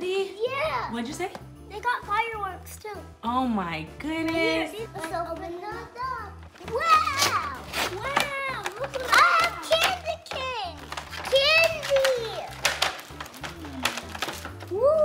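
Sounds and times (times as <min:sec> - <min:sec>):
young children's excited voices: 0:05.0 - 0:12.5.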